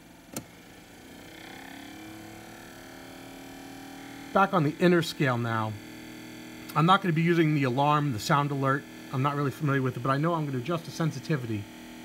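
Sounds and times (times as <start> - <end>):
display motor humming: 0.0 - 12.0.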